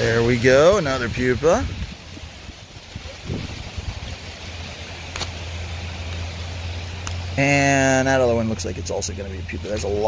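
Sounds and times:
wind buffeting microphone: 0.0s - 5.0s.

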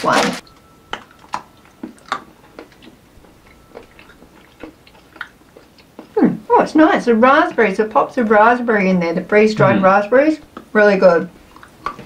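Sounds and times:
chewing clicks: 0.9s - 6.2s, 11.5s - 12.0s.

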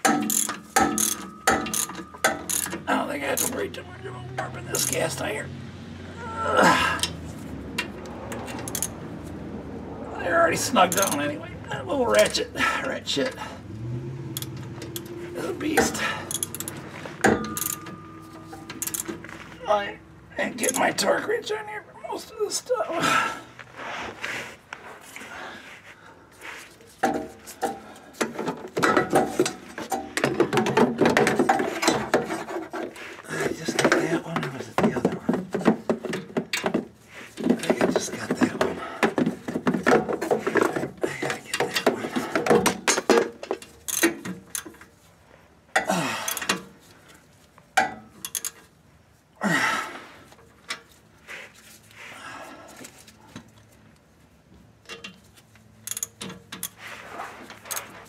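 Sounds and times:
socket ratchet clicking: 0.0s - 2.8s, 8.4s - 9.0s, 14.4s - 15.1s, 16.2s - 16.8s, 18.8s - 19.2s, 55.8s - 56.8s.

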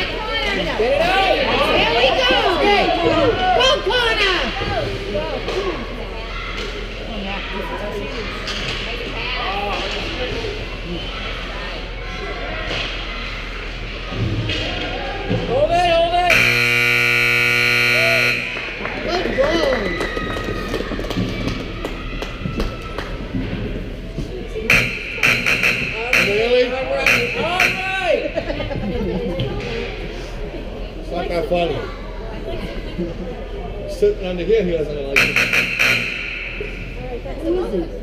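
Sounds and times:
spectators talking and shouting: 0.0s - 38.0s
scoreboard buzzer: 16.3s - 19.0s, 24.7s - 28.4s, 35.2s - 37.0s.

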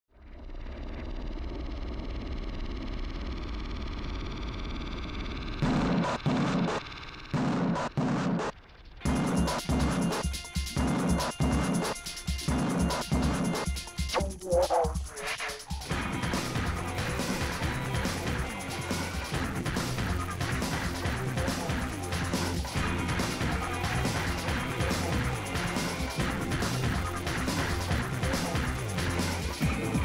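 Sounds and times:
steady drumbeat: 5.6s - 6.8s, 7.4s - 30.0s.

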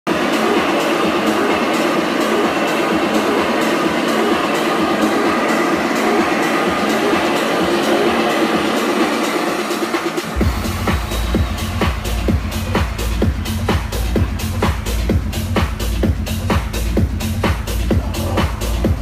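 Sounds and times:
loud techno over sound system: 0.1s - 19.0s.

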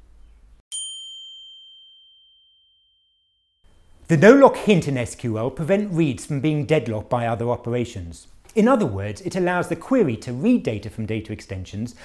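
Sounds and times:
high bell-like ding: 0.7s - 4.0s.

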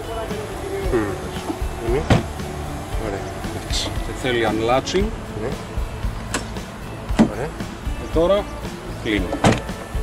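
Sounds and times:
car door latch click: 2.1s - 2.3s, 9.3s - 9.7s.

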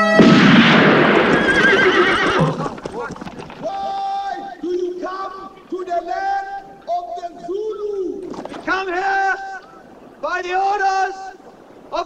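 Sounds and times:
horses neighing: 0.1s - 12.0s.

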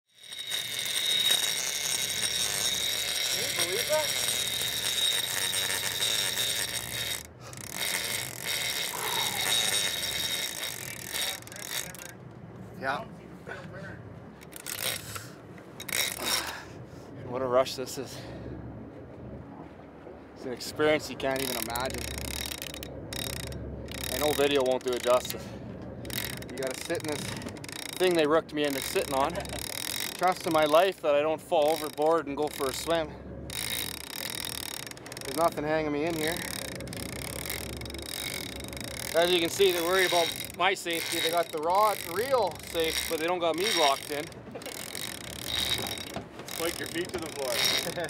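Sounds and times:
fishing reel drag screaming: 0.1s - 12.2s, 14.4s - 16.6s, 21.2s - 48.0s.

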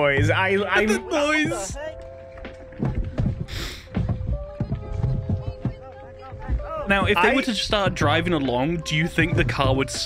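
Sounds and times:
held note of background music: 0.0s - 10.0s.

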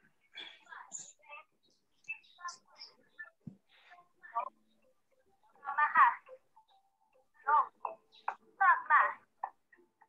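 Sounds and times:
woman speaking over video call: 5.5s - 6.4s, 7.4s - 9.3s.

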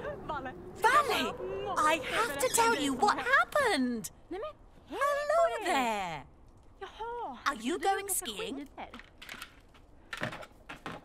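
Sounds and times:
skis and poles knocking: 8.8s - 11.0s.

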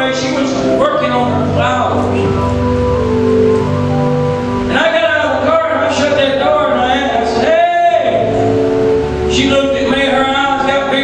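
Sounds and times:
church band holding chords: 0.0s - 11.0s
steady hissing wash: 0.0s - 11.0s.

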